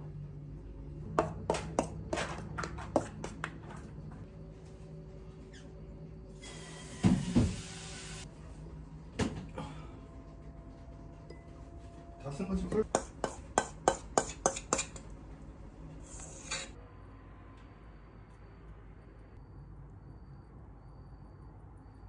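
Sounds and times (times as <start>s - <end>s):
utensils and glass dish handling: 12.6s - 15.1s.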